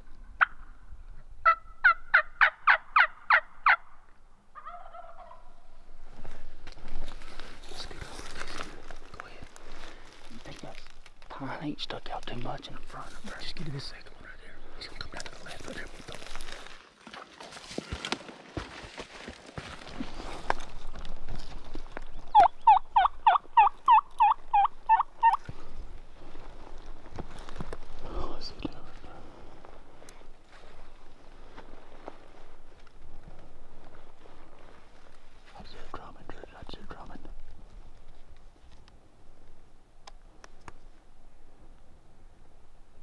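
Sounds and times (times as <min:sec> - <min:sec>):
turkey yelps: 0:01.4 - 0:03.9, 0:04.6 - 0:05.6, 0:22.3 - 0:25.4
rustling of leaves and gear: 0:05.5 - 0:43.0.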